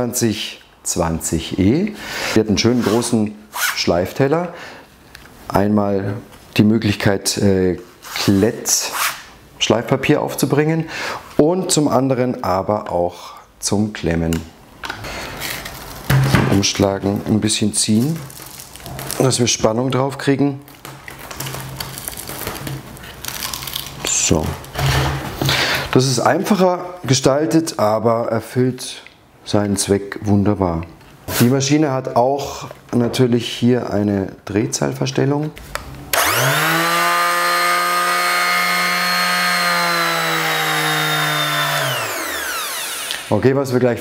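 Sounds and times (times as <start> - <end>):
electric orbital sander whining: 36.1 - 43.3.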